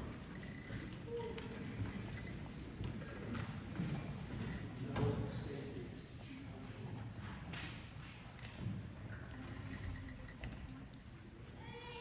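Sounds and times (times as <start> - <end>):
low background murmur: 0.0 - 12.0.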